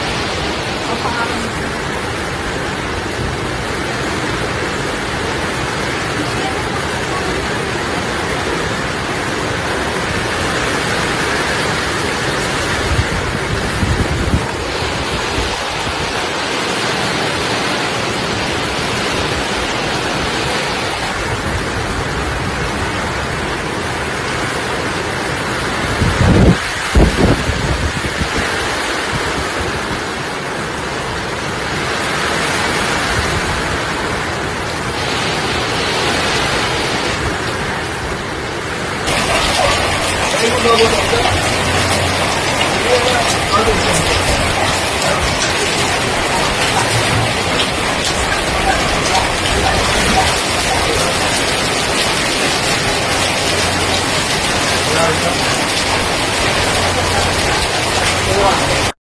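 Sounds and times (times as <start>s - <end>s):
heavy rain and wind: 0.0s - 59.0s.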